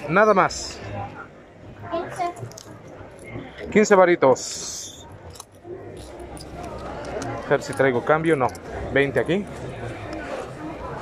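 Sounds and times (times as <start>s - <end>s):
low murmur of voices: 0.0s - 11.0s.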